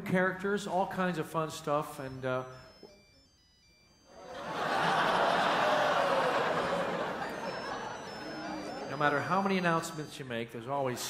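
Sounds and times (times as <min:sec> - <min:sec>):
mobile phone ringtone: 0:01.8 - 0:10.5
audience laughing: 0:04.2 - 0:10.0.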